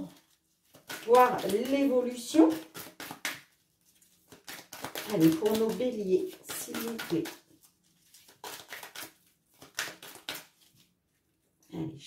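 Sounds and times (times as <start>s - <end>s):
cards being shuffled: 0.1s - 10.9s.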